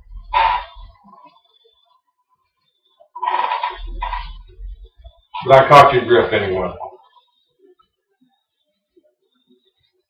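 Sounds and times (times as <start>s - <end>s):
man's voice: 5.4s - 6.9s.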